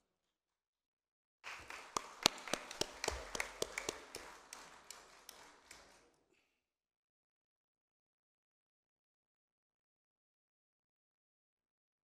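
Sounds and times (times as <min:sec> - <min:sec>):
audience clapping: 0:01.4 - 0:06.3.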